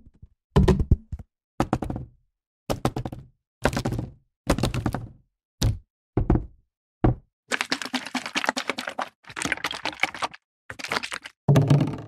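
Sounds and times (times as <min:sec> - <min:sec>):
plastic bottle knocking: 0:11.5 - 0:12.0.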